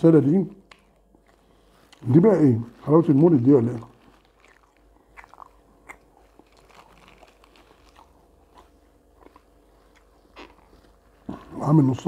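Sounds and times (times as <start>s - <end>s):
person chewing crunchy pastry: 0.6s - 12.0s.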